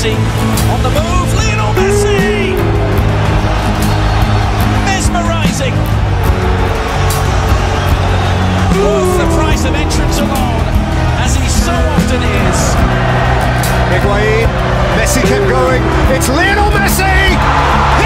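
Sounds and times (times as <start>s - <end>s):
background music with bass and beat: 0.0s - 18.0s.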